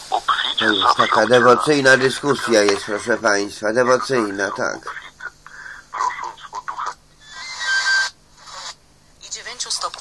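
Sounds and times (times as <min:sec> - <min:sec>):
voice fragments: 0:00.1 - 0:08.7.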